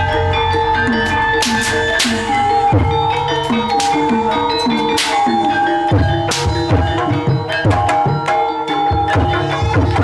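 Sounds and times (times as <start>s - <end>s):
gamelan music: 0.0s - 10.0s
hand-drum strokes: 0.0s - 10.0s
metallophone melody: 0.0s - 10.0s.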